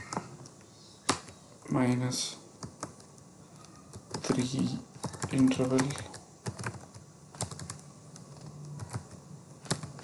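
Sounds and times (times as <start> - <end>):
computer keyboard typing: 0.0 - 1.4, 2.6 - 10.0.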